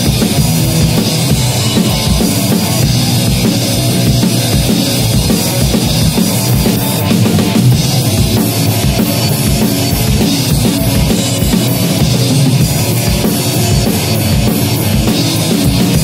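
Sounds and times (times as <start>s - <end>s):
rock drum kit: 0.0s - 16.0s.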